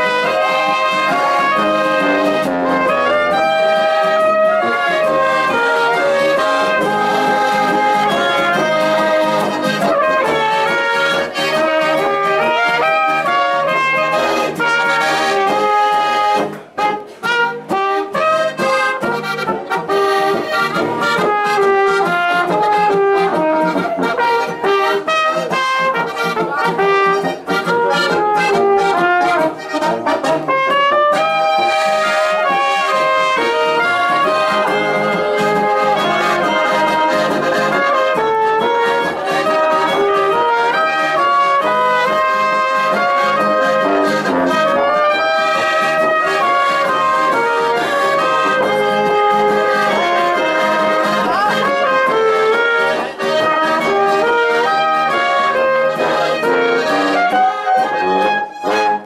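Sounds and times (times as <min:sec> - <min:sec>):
brass band playing lively tune: 0:00.0 - 0:59.0.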